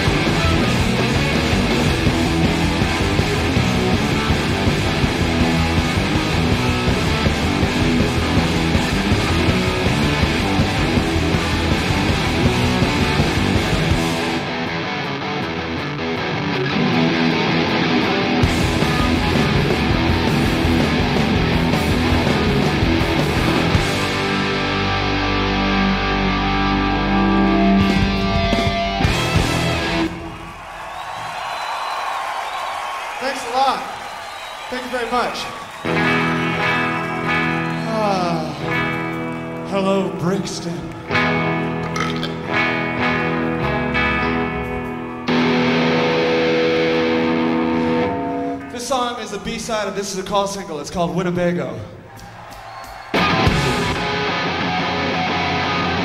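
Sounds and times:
electric guitar chords ringing: 0.0s - 30.3s, 35.8s - 49.5s, 53.2s - 56.0s
live rock band playing: 0.0s - 30.4s, 35.7s - 49.0s, 52.4s - 56.0s.

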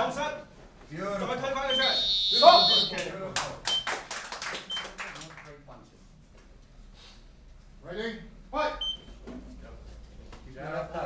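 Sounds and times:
high electronic beep: 1.7s - 3.0s
man calling out: 1.7s - 3.0s.

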